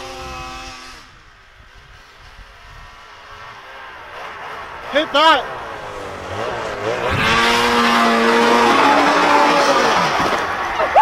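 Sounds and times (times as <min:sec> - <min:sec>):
snowmobile engine running: 0:00.0 - 0:11.0.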